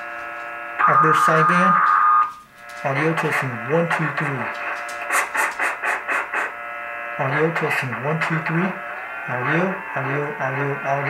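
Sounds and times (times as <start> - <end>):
steady radio hiss: 0.0 - 11.0
thin steady whine: 0.0 - 11.0
short hissy radio pulses: 5.0 - 6.6.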